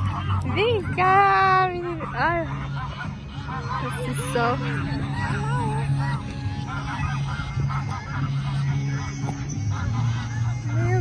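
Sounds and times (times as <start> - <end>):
geese honking: 0.0 - 11.0
steady low hum: 0.0 - 11.0.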